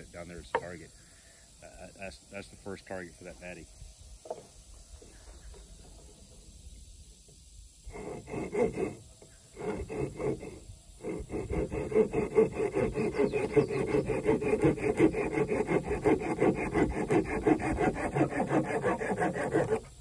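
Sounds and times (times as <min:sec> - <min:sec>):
hand tool rasping wood: 0:07.9 - 0:20.0.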